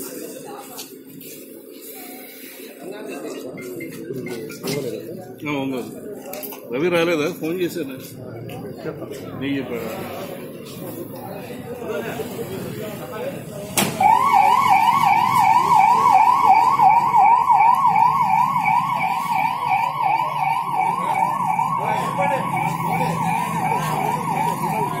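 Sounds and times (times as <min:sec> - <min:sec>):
voices: 0:00.0 - 0:25.0
ambulance siren yelping: 0:14.0 - 0:25.0.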